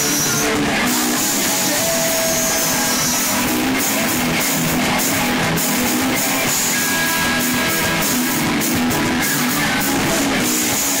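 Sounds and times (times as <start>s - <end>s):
bass guitar: 0.0s - 11.0s
distorted electric guitars: 0.0s - 11.0s
heavy metal band playing: 0.0s - 11.0s.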